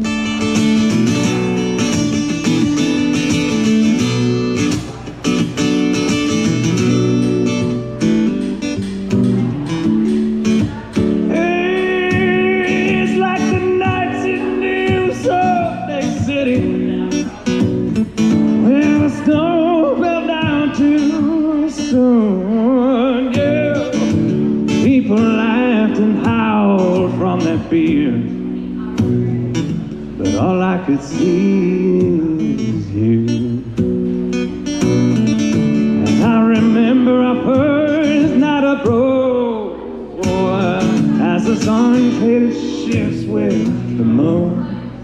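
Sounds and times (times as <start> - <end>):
acoustic guitar strumming chords: 0.0 - 45.0
man singing with vibrato: 5.7 - 28.6, 29.4 - 45.0.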